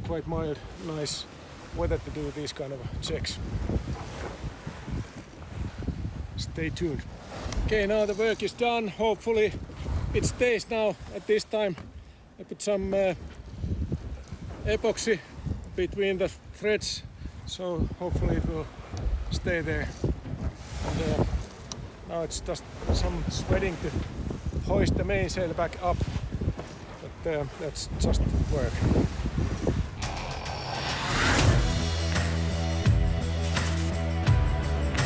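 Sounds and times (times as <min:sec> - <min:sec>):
wind buffeting microphone: 0:00.0 - 0:08.6, 0:09.2 - 0:11.1, 0:13.2 - 0:31.9
hiss of wind and sea: 0:00.0 - 0:08.9, 0:09.5 - 0:31.8.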